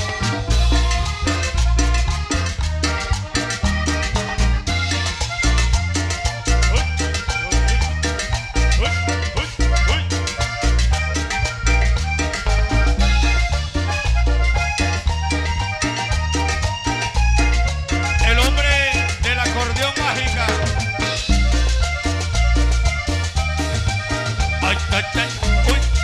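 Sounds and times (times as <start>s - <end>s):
accordion: 0.0s - 26.0s
band playing cumbia: 0.0s - 26.0s.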